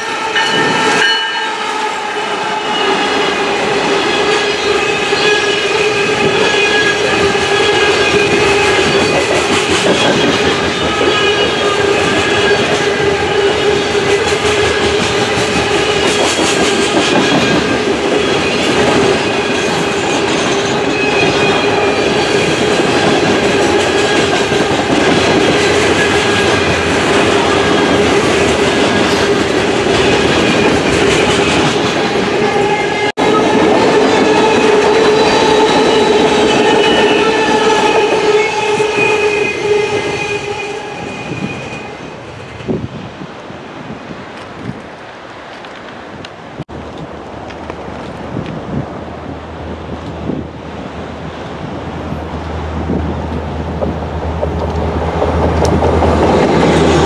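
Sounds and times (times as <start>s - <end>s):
freight train wheels rumbling on rail: 0.0s - 57.0s.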